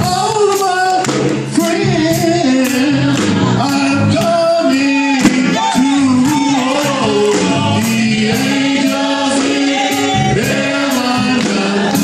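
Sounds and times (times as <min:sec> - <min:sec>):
group singing gospel song: 0:00.0 - 0:12.0
man singing into microphone: 0:00.0 - 0:12.0
steady beat of sharp strikes: 0:05.1 - 0:12.0.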